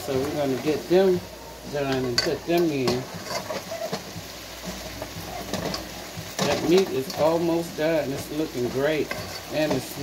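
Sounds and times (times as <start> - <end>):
meat sizzling in a skillet: 0.0 - 10.0.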